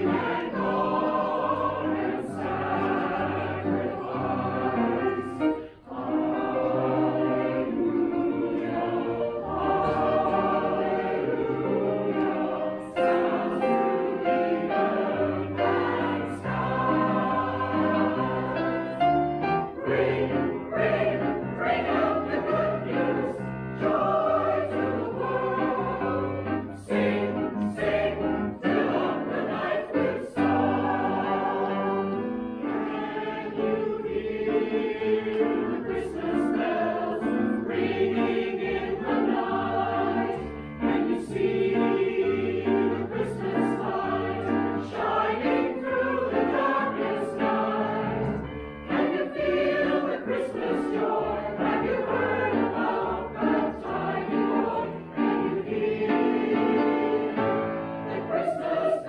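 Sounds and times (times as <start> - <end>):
choir singing: 0.0 - 59.0.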